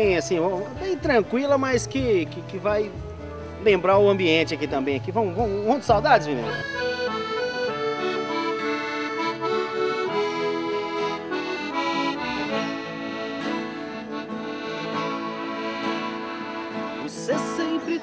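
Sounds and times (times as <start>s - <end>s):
acoustic guitar accompaniment: 0.0s - 18.0s
piano accordion playing melody: 0.0s - 18.0s.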